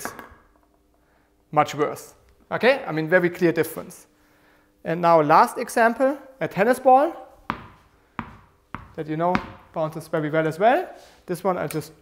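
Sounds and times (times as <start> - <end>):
tennis ball bouncing on hard surface: 7.5 - 9.8.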